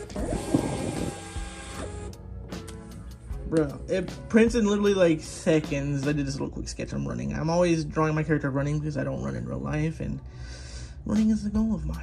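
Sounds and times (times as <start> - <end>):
thermal printer whirring: 0.0 - 2.2.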